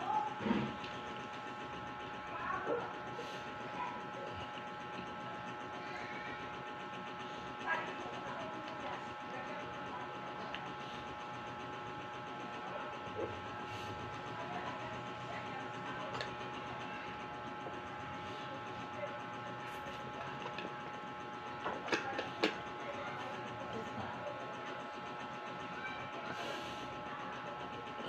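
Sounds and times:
faint distant voices: 7.2 - 28.0.

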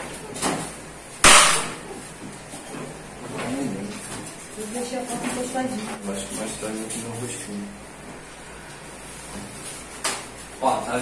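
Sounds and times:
loud sharp slap: 1.2 - 1.8.

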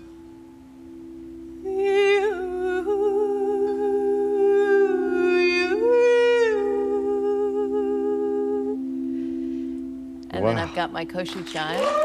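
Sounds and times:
singing bowls ringing: 0.0 - 12.0
person singing wordless tone: 1.6 - 8.9.

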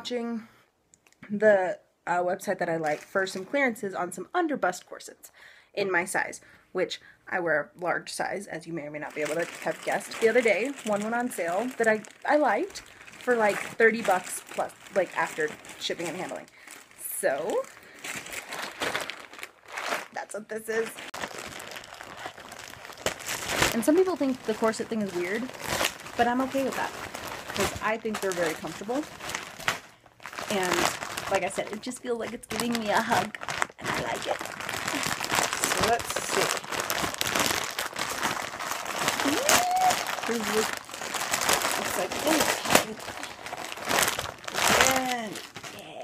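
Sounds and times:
plastic bag crinkling: 8.9 - 46.0
packaging wrap crackling: 9.0 - 46.0.

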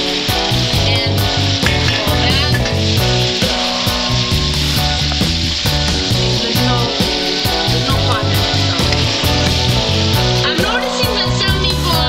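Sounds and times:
background music with steady beat: 0.0 - 12.0
meatballs sizzling in oil: 0.0 - 12.0.

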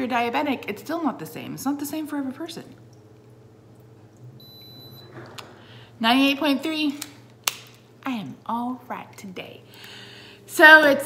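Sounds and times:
thermometer high-pitched beep: 4.4 - 5.1.

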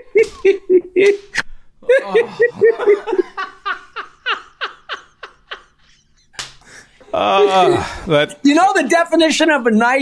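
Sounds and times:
person laughing hard: 0.0 - 1.2, 1.8 - 8.1.

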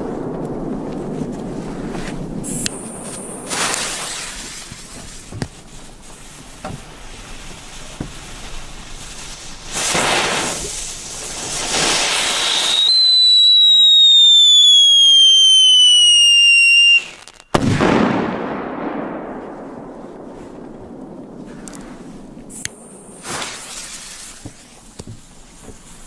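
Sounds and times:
firework hissing: 0.0 - 17.6, 20.5 - 26.0
firework bang: 0.0 - 25.7
firework whistle falling in pitch: 11.8 - 17.6.

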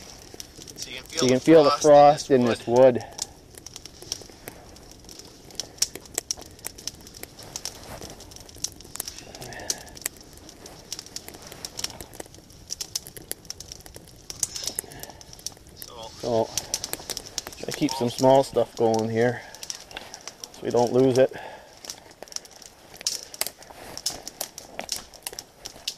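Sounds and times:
campfire crackling: 0.0 - 25.9
kindling sticks being handled: 0.0 - 25.9.

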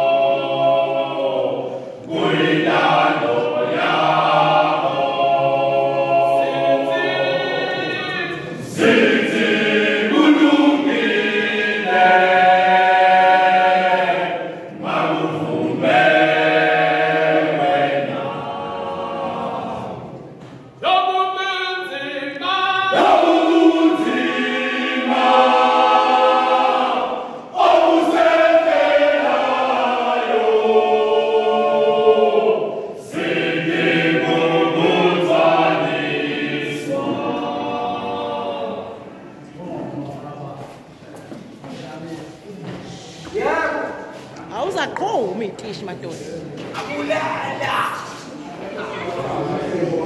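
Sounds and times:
male choir singing a cappella: 0.0 - 40.8, 46.3 - 50.0.

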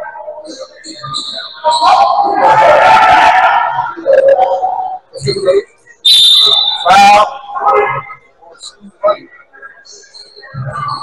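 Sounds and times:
loud shouting voices: 0.0 - 5.4
referee's whistle: 0.8 - 2.4, 6.0 - 7.3.

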